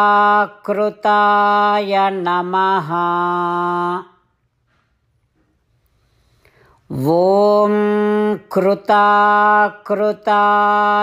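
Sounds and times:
person chanting: 0.0 - 4.3, 6.9 - 11.0.

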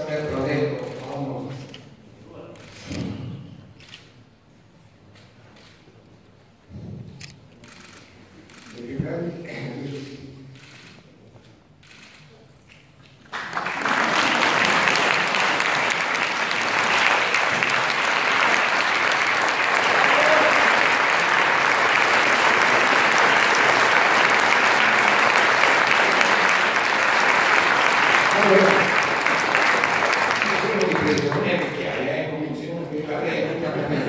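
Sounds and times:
audience applause: 13.3 - 32.1.

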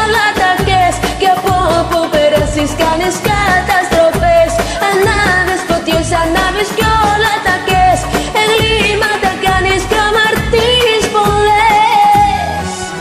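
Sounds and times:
karaoke backing track: 0.0 - 13.0
woman singing pop song: 0.0 - 13.0.

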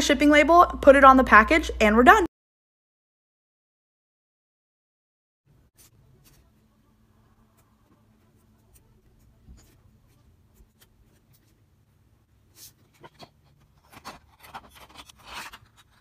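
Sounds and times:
marker scratching on plastic: 7.4 - 11.7, 12.5 - 16.0.

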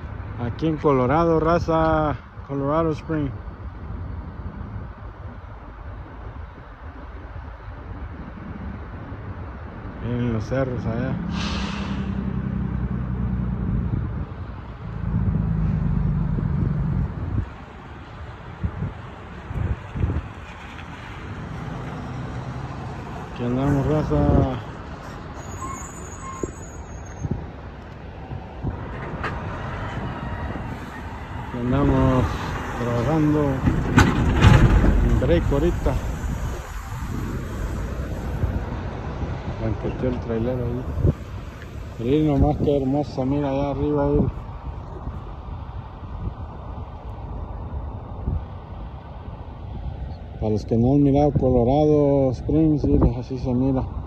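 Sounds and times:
wind buffeting microphone: 3.4 - 54.0.

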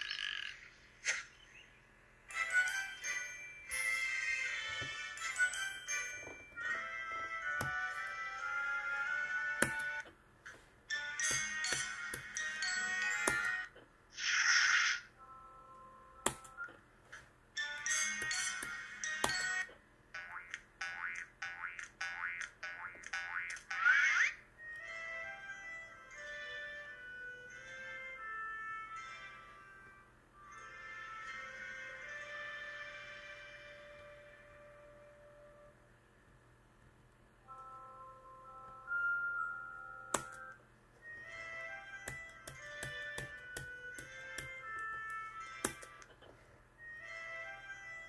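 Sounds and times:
cartoon frog croak: 0.0 - 1.3
tinkly menu music: 2.3 - 10.0, 10.9 - 13.7, 15.2 - 16.7, 17.6 - 19.7, 24.6 - 33.8, 37.5 - 46.0, 46.8 - 48.0.

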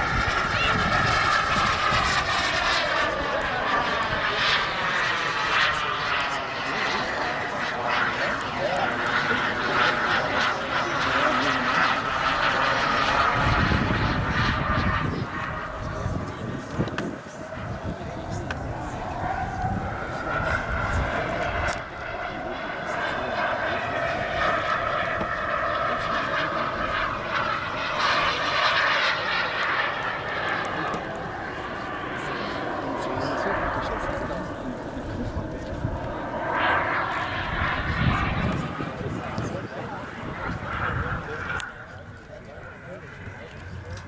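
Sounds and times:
model jet turbine whine: 0.0 - 44.0.

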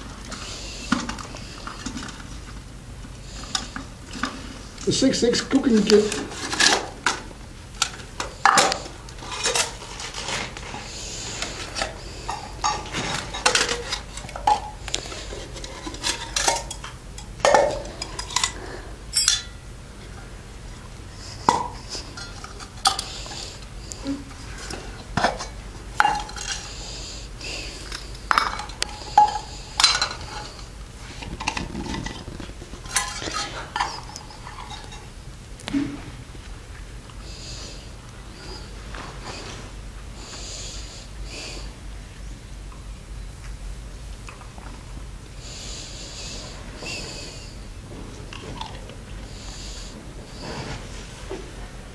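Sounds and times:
metal pots and lids clanking: 15.6 - 19.6.

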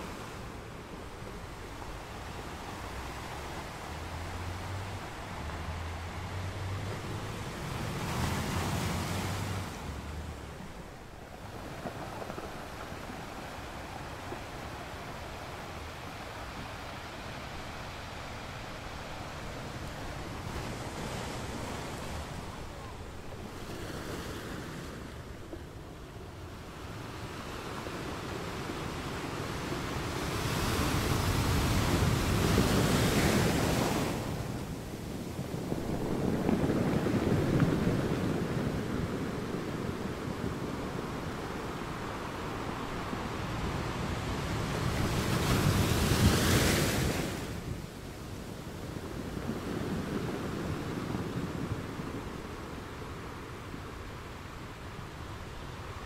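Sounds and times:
ocean surf on rocky shore: 0.0 - 56.0.

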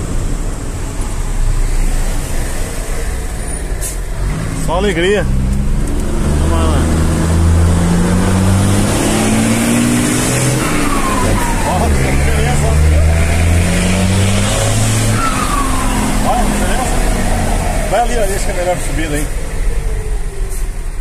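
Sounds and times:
diesel truck engine revving: 0.0 - 21.0.

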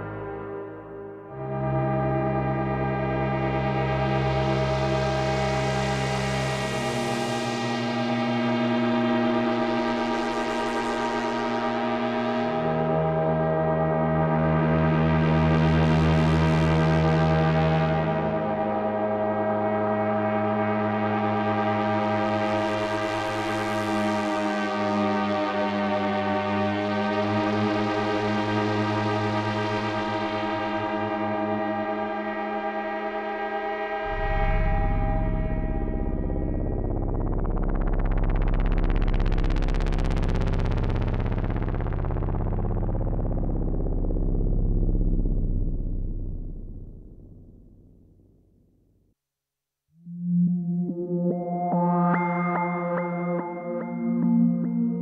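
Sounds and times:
synthesiser ambient pad: 0.0 - 48.4
deep pulsing low note: 33.9 - 48.2.

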